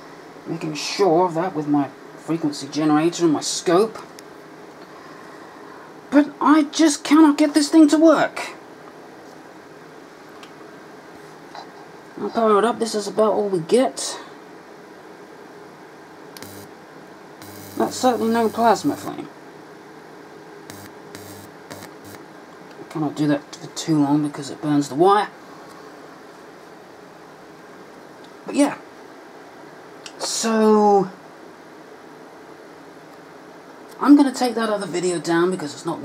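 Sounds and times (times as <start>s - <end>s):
room noise hiss: 0.0s - 36.0s
electric arc hissing and sputtering: 16.4s - 16.8s, 17.4s - 19.2s, 20.7s - 22.2s.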